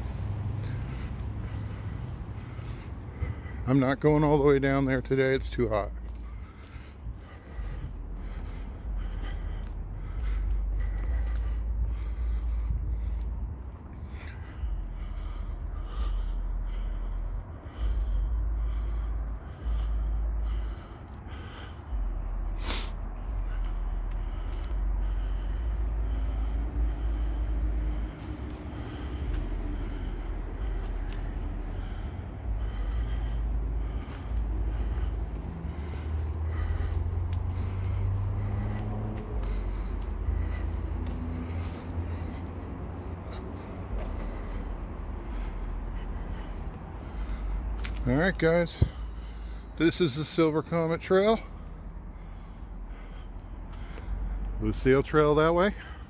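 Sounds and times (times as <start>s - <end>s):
footsteps on paved trail: 0.0s - 56.0s
insects chorus: 0.0s - 56.0s.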